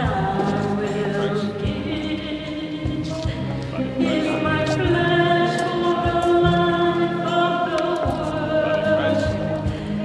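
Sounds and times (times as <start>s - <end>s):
choir singing a hymn: 0.0s - 3.2s, 4.0s - 10.0s.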